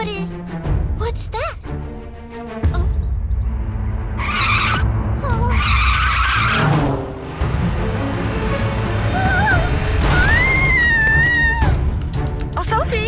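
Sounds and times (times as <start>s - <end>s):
tyre screeching: 4.2s - 6.9s.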